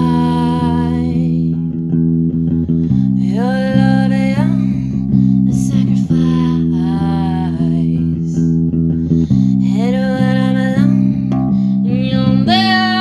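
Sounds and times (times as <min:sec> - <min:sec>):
worship song guitar chords: 0:00.0 - 0:13.0.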